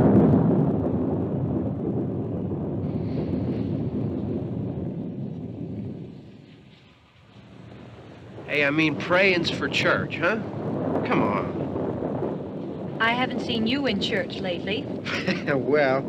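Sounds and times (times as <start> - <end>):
thunder rolling: 0.0 - 16.0.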